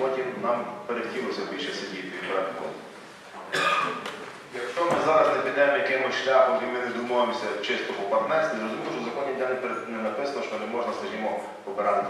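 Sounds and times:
man speaking into a microphone: 0.0 - 2.8, 4.5 - 12.0.

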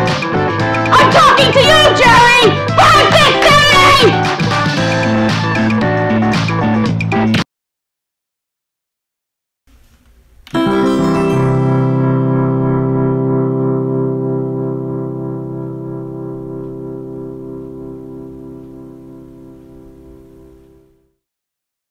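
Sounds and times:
held keyboard chord: 10.5 - 21.1.

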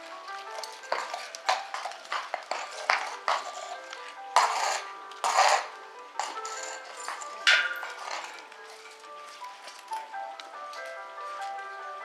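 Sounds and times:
background music: 0.0 - 12.0
hoof scrapes on concrete: 0.5 - 8.4
hoof knocks on concrete: 0.9 - 3.5, 7.4 - 8.4.

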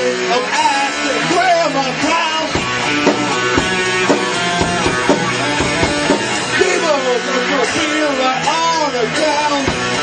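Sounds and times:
man singing lead vocal: 0.0 - 3.2, 4.7 - 10.0
electric guitar: 0.0 - 10.0
live rock band playing: 0.0 - 10.0.

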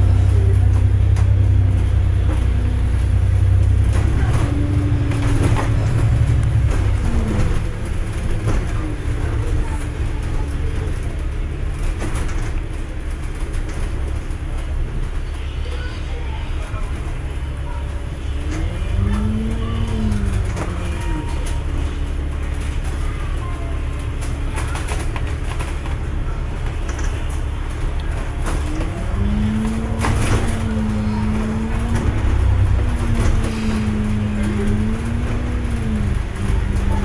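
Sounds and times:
bus engine and road rumble: 0.0 - 37.0.

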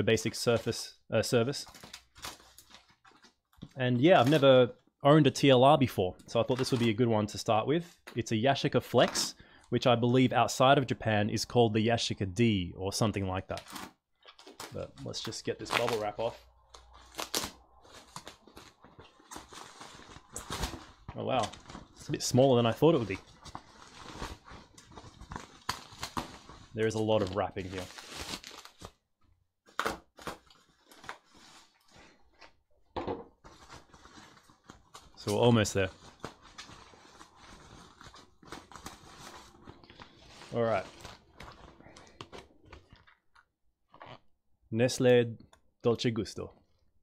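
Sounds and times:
bubble wrap crinkling: 1.7 - 4.4, 13.6 - 29.0, 29.7 - 32.3, 33.4 - 43.3.

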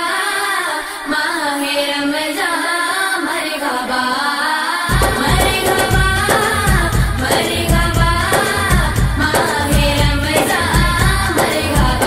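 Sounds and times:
person singing devotional song: 0.0 - 12.0
steady low beat: 4.9 - 12.0.

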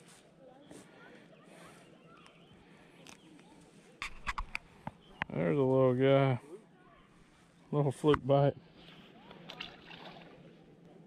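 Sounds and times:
handling noise of fishing lure: 3.0 - 4.9.

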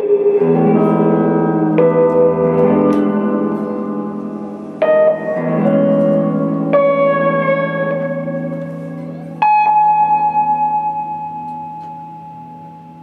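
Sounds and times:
electric guitar notes ringing: 0.0 - 13.0.

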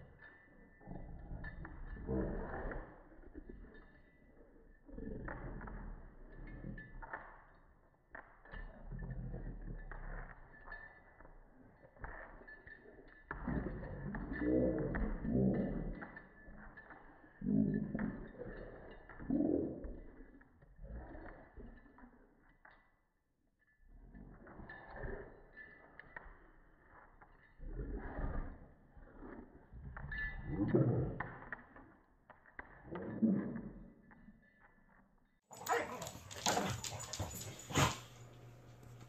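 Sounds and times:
dogs play-growling: 35.5 - 39.0.

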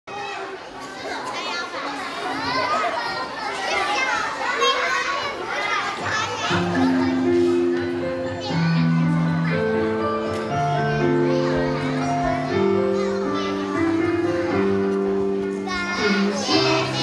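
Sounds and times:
children chattering and calling out: 0.1 - 17.0.

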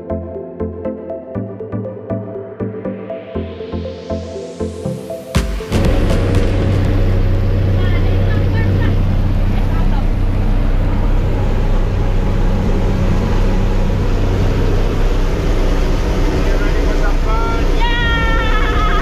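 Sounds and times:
plane engine and propeller drone: 3.5 - 19.0.

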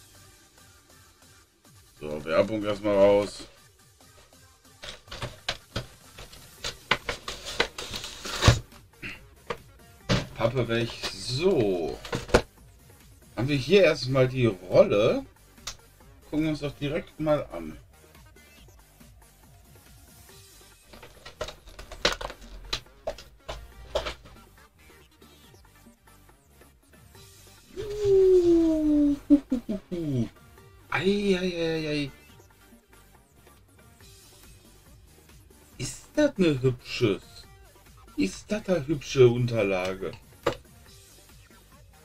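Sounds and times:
quiet background music: 0.0 - 42.0
packaging rustling and clicking: 4.8 - 8.7, 9.5 - 12.5, 20.9 - 24.4.

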